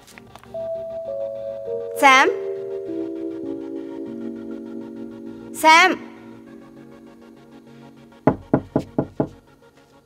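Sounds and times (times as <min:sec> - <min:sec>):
faint background music: 0:00.0 - 0:10.0
knocking on wooden door: 0:08.3 - 0:09.4.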